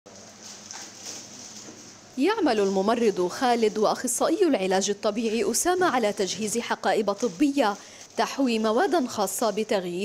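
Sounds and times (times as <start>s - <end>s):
packets rustling: 5.1s - 10.0s.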